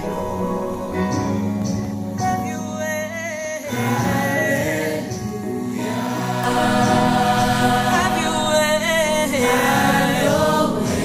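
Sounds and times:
gospel choir singing: 0.0s - 2.3s, 3.6s - 11.0s.

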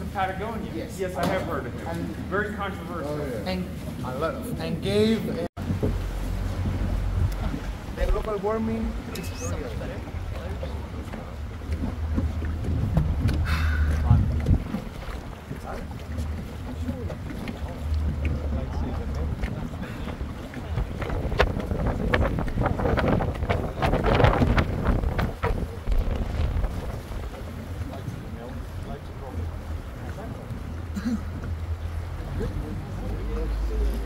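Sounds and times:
wind buffeting microphone: 4.0s - 33.1s
water lapping at hull: 5.6s - 34.0s
short sharp knocks and splashes: 10.2s - 28.8s.

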